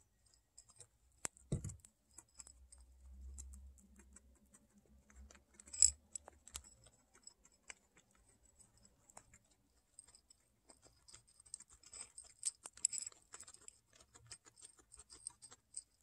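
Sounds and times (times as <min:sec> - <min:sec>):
guinea pig crunching pellets: 0:00.0 - 0:16.0.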